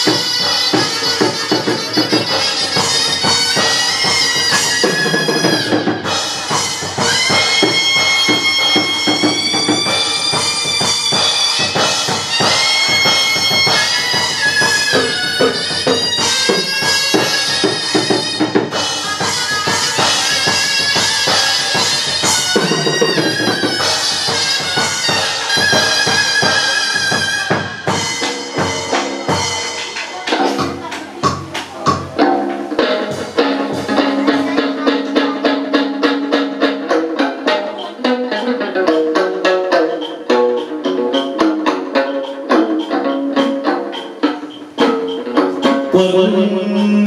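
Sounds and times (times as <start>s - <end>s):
shrill reedy wind instrument: 0.0s - 31.0s, 32.1s - 47.0s
drum and clapper beats: 0.0s - 46.4s.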